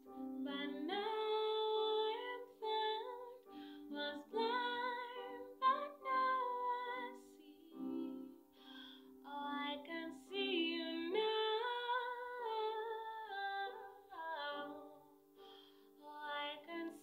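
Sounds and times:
woman singing: 0:00.2 - 0:08.5, 0:09.2 - 0:15.1, 0:16.0 - 0:17.0.

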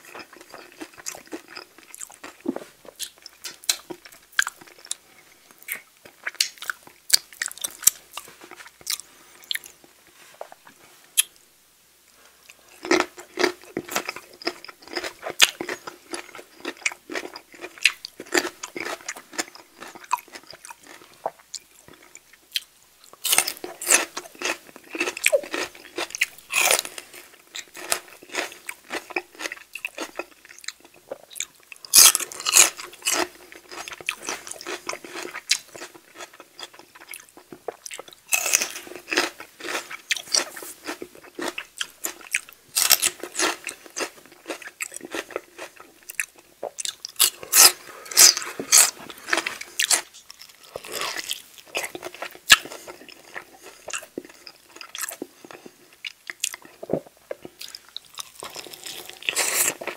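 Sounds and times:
biting and crunching food: 0:00.0 - 0:11.4, 0:12.6 - 0:59.9.

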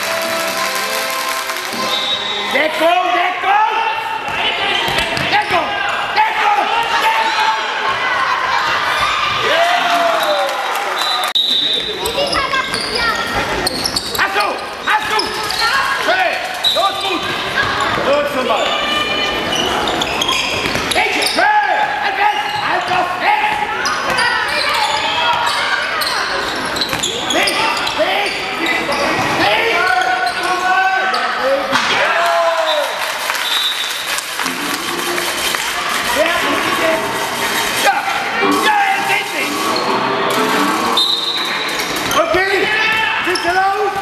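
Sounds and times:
ball bouncing on court floor: 0:04.3 - 0:05.6, 0:20.6 - 0:21.0, 0:26.8 - 0:27.1.

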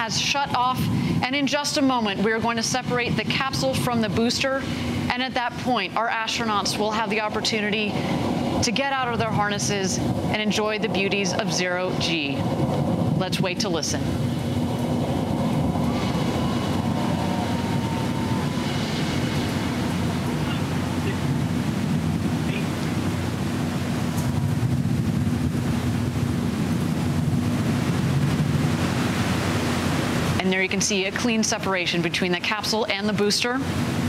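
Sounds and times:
low hum: 0:00.0 - 0:32.0
steady rushing noise: 0:00.0 - 0:34.0.

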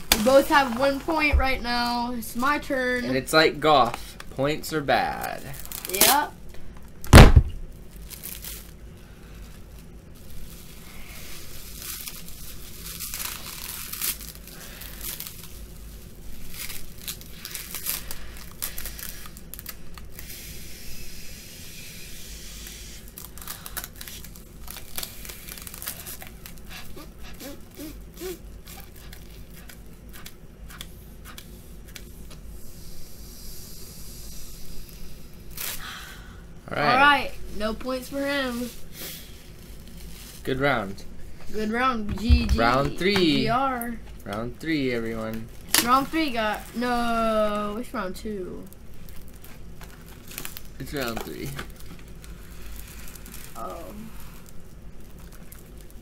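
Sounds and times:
plastic wrap crinkling and tearing: 0:04.9 - 0:21.0, 0:22.1 - 0:32.2, 0:34.9 - 0:36.0, 0:37.9 - 0:40.8, 0:42.6 - 0:56.0.

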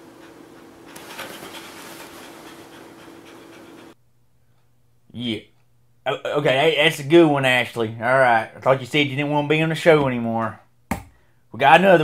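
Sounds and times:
dog panting: 0:00.0 - 0:04.0.

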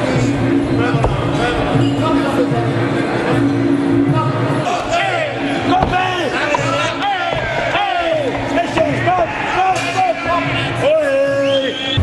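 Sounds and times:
steady low background tones: 0:00.0 - 0:10.9
voices: 0:00.0 - 0:12.0
low thud of impact: 0:05.6 - 0:09.2.

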